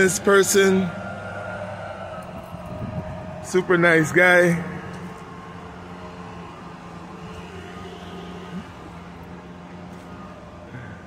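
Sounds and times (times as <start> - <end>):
low engine hum: 0.0 - 11.0
street ambience: 0.0 - 11.0.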